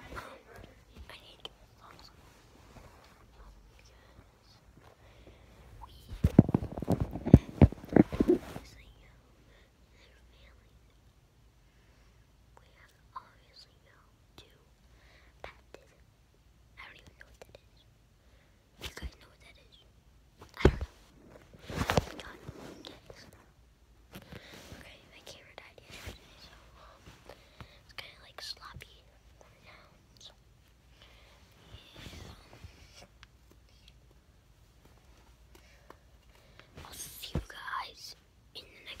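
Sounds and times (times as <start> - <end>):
boy whispering: 0.0 - 2.2, 3.0 - 4.7, 5.8 - 10.9, 12.6 - 14.7, 15.4 - 16.0, 16.8 - 17.8, 18.8 - 19.9, 20.5 - 21.0, 21.8 - 23.4, 24.7 - 30.4, 31.0 - 34.0, 36.8 - 39.0.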